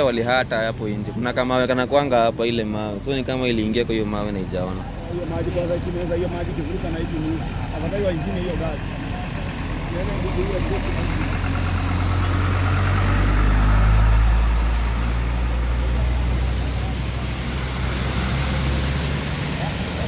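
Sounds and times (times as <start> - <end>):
vehicle engines droning through water: 0.0 - 20.0.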